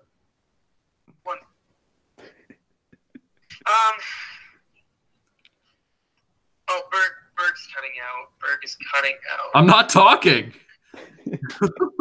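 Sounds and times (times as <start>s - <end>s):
person talking: 3.5s - 4.5s, 6.7s - 10.6s, 11.2s - 12.0s.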